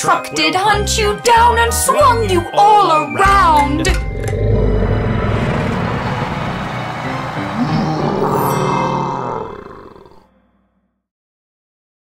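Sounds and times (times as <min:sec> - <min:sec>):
monster roar: 0:04.2 - 0:06.6, 0:07.5 - 0:10.3.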